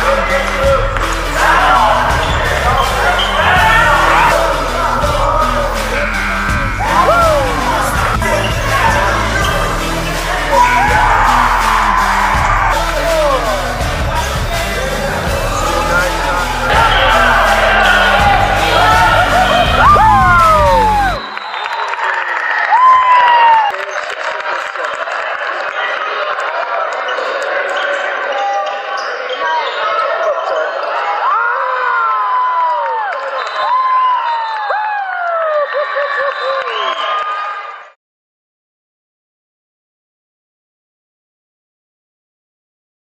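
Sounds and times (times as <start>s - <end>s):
music with heavy beat: 0.0s - 21.2s
voices calling out: 0.0s - 21.4s.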